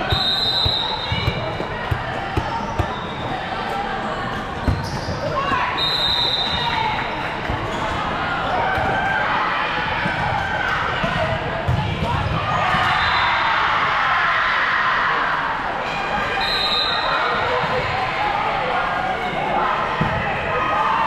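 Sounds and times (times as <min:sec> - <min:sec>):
referee's whistle blasts: 0:00.0 - 0:01.4, 0:04.9 - 0:06.8, 0:16.4 - 0:17.4
chatter and shouts of people: 0:00.0 - 0:21.0.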